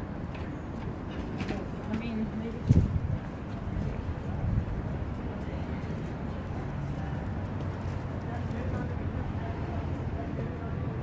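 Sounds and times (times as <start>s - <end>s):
faint voices of passers-by: 0.0s - 11.0s
road traffic rumble: 0.0s - 11.0s.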